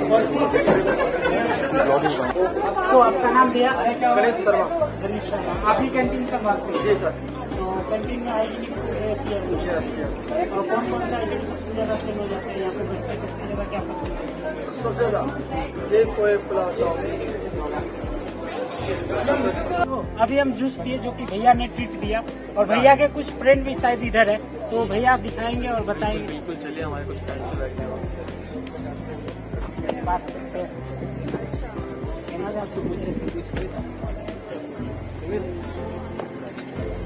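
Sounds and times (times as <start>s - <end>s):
background music: 0.0s - 37.0s
crowd chatter: 0.0s - 37.0s
people talking: 0.0s - 37.0s.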